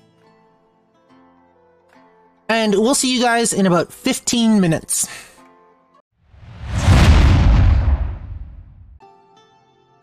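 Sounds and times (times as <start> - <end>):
loud rumbling boom: 6.4 - 9.0.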